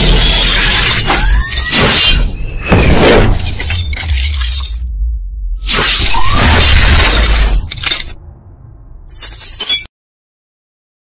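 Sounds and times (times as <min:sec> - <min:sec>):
deep bass rumble: 0:04.8 - 0:05.6.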